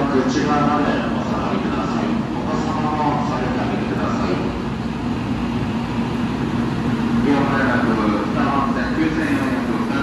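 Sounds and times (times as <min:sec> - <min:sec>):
constant low hum: 0:00.0 - 0:10.0
train rumbling past: 0:00.0 - 0:10.0
voices: 0:00.0 - 0:10.0.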